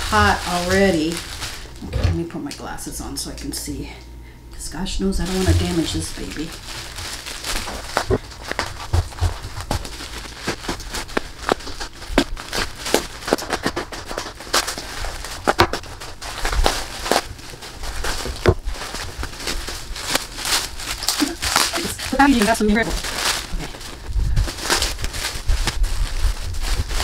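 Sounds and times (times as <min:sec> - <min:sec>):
bubble wrap crinkling and crackling: 0:00.0 - 0:27.0.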